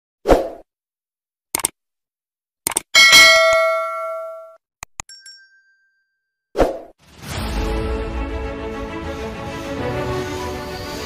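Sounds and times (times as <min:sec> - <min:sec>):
quick clicks: 0:01.5 - 0:01.8, 0:02.6 - 0:02.9
bright bell-like ding: 0:03.0 - 0:06.1.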